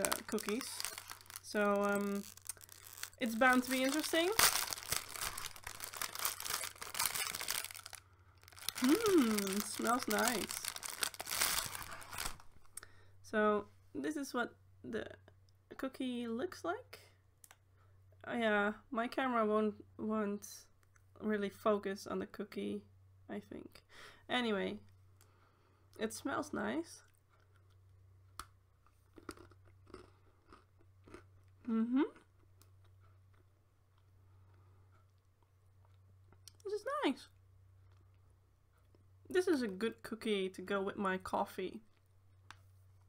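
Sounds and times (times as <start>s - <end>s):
chewing with crunches: 0.0s - 3.2s, 3.8s - 12.3s, 29.1s - 36.5s
cookie crunching bite: 0.0s - 12.4s, 29.1s - 33.5s
plastic packaging crinkling: 0.0s - 12.7s.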